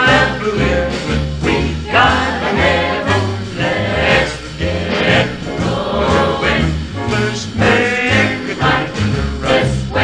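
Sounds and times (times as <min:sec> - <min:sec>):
bass line: 0:00.0 - 0:10.0
choir singing in harmony: 0:00.0 - 0:10.0
swing band playing: 0:00.0 - 0:10.0.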